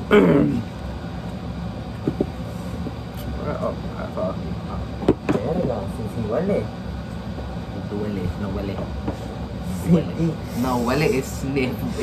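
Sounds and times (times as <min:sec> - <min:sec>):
low room hum: 0:00.0 - 0:12.0
people talking: 0:03.3 - 0:06.7, 0:07.7 - 0:08.9, 0:09.7 - 0:12.0.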